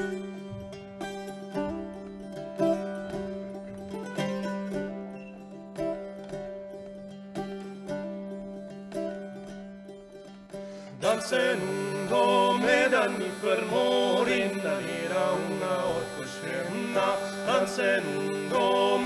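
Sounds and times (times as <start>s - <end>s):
plucked string instrument strumming: 0.0s - 19.0s
hurdy-gurdy melody over drone: 10.7s - 19.0s.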